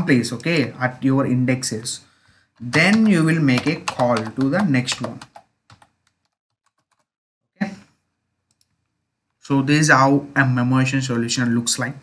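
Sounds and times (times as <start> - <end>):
typing on computer keyboard: 2.6 - 7.1.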